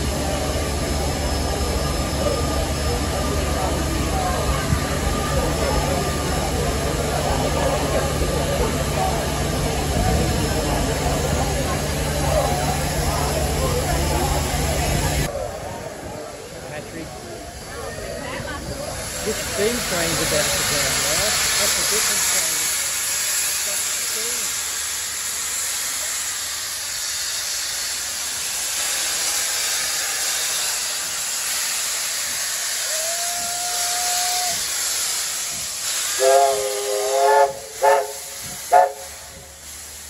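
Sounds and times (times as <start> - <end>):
steam locomotive hissing: 0.0 - 40.0
train whistle blasts: 36.2 - 39.4.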